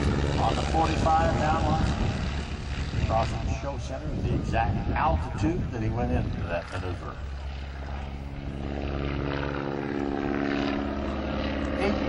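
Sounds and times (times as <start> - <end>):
propeller plane engine droning: 0.0 - 12.0.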